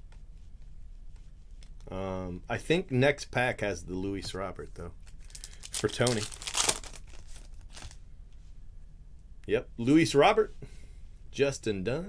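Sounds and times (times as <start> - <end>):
trading cards rustling: 5.0 - 8.0.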